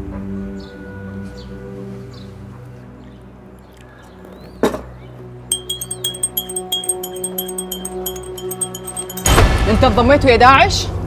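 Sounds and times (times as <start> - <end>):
teaspoon clinking against glass: 5.5 - 9.5.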